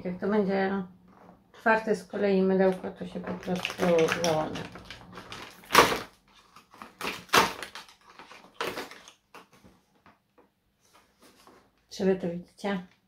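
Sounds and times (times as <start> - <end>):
fiddling with packaging: 1.1 - 11.9.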